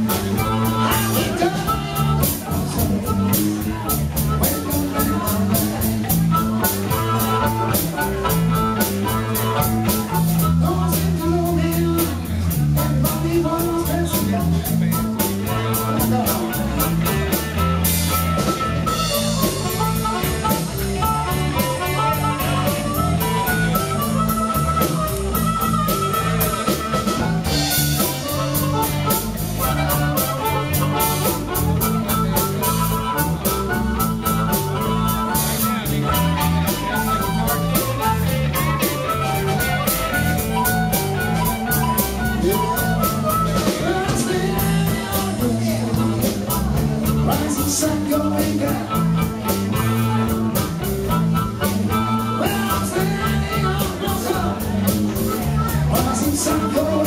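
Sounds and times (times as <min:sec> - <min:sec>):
amplified harmonica: 0:00.0 - 0:57.0
bass guitar: 0:00.0 - 0:57.0
drum kit beat: 0:00.0 - 0:57.0
electric guitar: 0:00.0 - 0:57.0.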